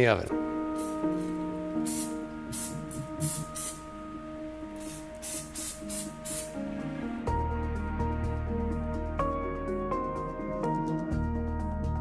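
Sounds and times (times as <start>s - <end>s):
background music: 0.0s - 12.0s
cooking oil spray hissing: 0.8s - 1.2s, 1.8s - 3.9s, 4.8s - 6.7s.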